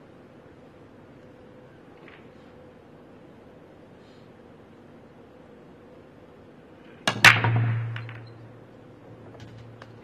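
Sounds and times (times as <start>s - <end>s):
cue ball cracking into racked balls: 7.0s - 8.5s
cue striking cue ball: 7.1s - 8.3s
billiard balls clattering: 7.1s - 8.5s.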